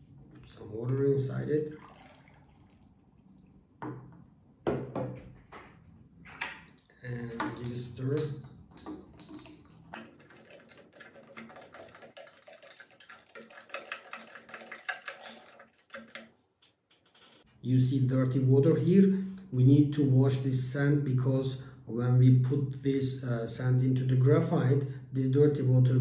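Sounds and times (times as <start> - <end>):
spoon scraping clinks against glass: 7.2 - 10.0.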